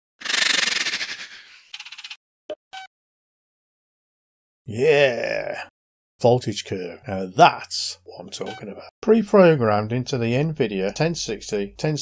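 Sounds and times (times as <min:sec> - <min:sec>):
rush of fluttering noise: 0:00.2 - 0:02.2.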